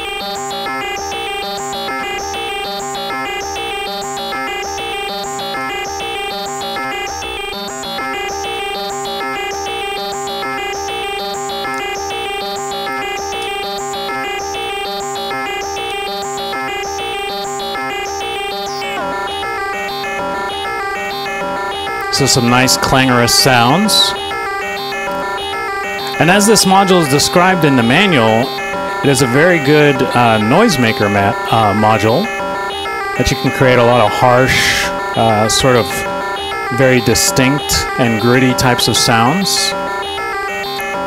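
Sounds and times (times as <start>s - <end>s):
steady held synth tone: 0.0s - 41.0s.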